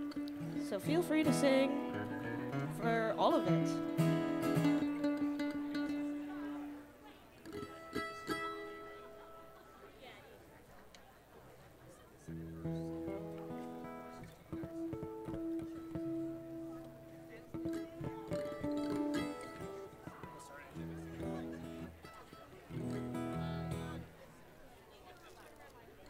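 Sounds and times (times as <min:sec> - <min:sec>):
acoustic guitars strumming chords: 0:00.0 - 0:09.7, 0:12.4 - 0:24.2.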